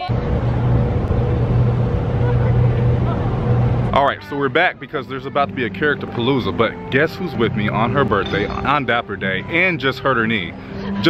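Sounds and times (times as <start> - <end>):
broad rush of noise: 0.0 - 11.0
low motor hum: 0.0 - 11.0.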